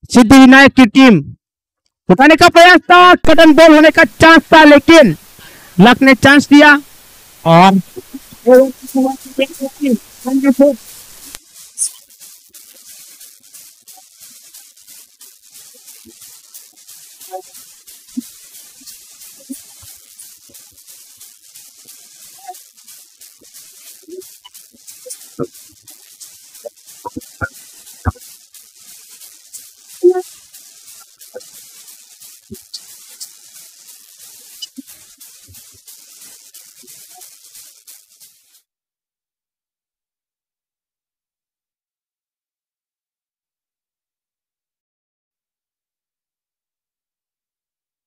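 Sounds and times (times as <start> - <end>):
steady hiss: 2.8 - 38.7.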